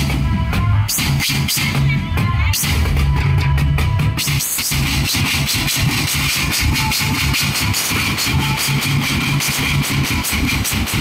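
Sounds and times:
marching snare drums: 0.0s - 11.0s.

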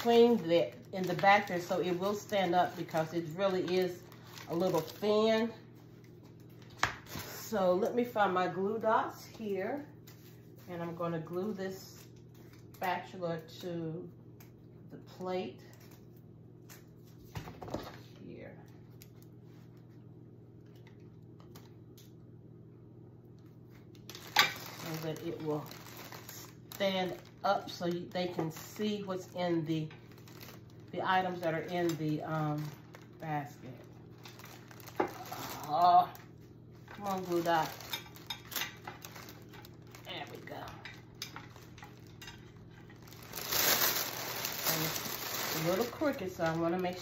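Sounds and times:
cellophane crinkling: 0.0s - 7.5s, 23.7s - 47.0s
low room hum: 0.0s - 47.0s
person speaking: 37.0s - 37.9s, 40.0s - 41.0s, 44.6s - 47.0s.

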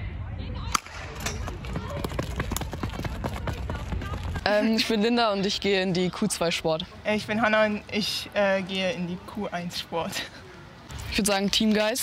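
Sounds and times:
sprinting footsteps on track: 1.4s - 4.6s.

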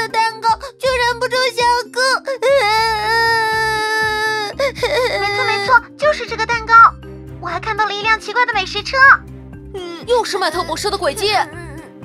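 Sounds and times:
cartoon voice crying: 2.4s - 5.9s.

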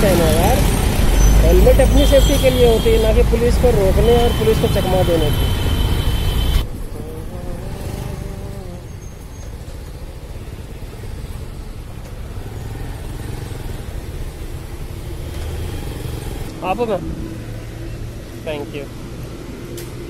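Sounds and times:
motorbike engine and road noise: 0.0s - 20.0s
rumble of street traffic: 0.0s - 20.0s.

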